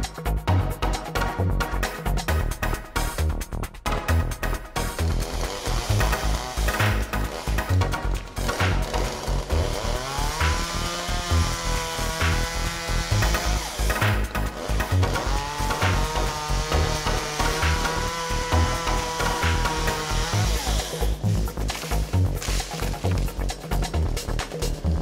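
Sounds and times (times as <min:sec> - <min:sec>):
background music with steady beat: 0:00.0 - 0:25.0
chainsaw revving: 0:04.4 - 0:25.0.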